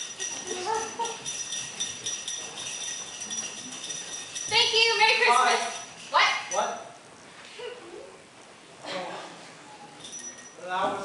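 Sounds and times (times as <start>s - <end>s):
handbell ringing: 0.0s - 6.9s, 10.0s - 10.6s.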